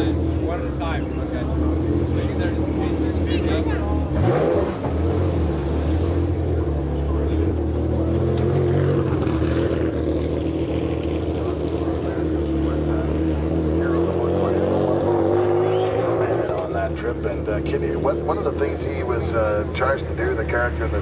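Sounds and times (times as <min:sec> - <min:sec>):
faint voices: 0:00.0 - 0:05.2, 0:05.8 - 0:21.0
engine running: 0:00.0 - 0:21.0.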